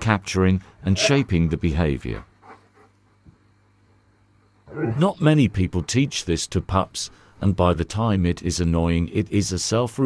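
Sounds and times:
narrating voice: 0.0s - 2.3s, 4.7s - 10.0s
low steady hum: 0.0s - 10.0s.

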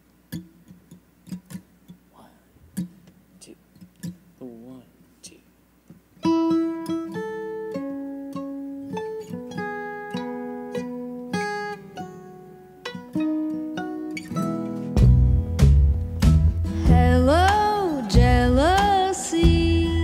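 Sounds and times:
country string band instrumental: 14.7s - 20.0s.

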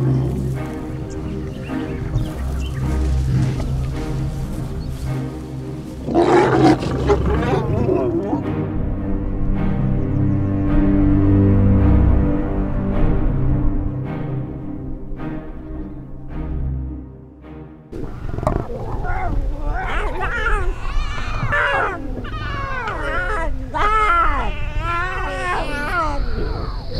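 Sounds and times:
lions snarling and growling: 0.0s - 8.5s, 18.0s - 26.9s
low rumble: 0.0s - 16.9s
music: 0.0s - 26.9s.

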